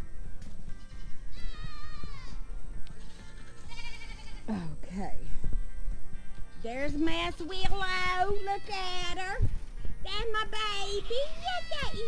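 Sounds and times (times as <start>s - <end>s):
young goat bleating: 0.8s - 2.4s, 3.0s - 4.6s, 11.0s - 12.0s.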